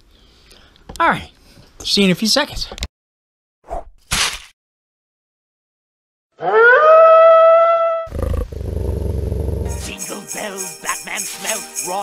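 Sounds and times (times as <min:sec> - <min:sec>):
wolf howl: 0:06.4 - 0:08.4
low rough growl: 0:08.0 - 0:09.7.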